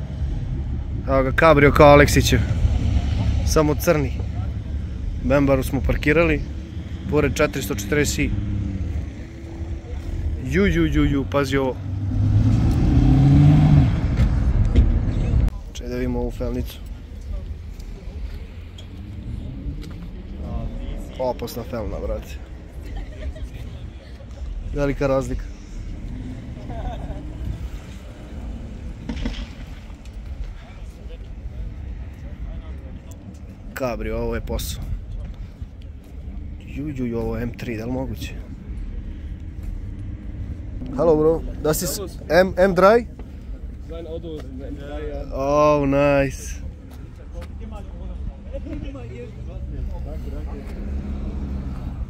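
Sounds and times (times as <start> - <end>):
steady low rumble: 0.0 - 52.0
voices talking: 0.0 - 52.0.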